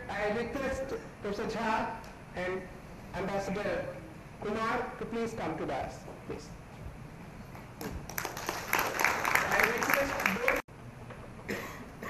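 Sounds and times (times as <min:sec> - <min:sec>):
audience applause: 0:08.1 - 0:10.7.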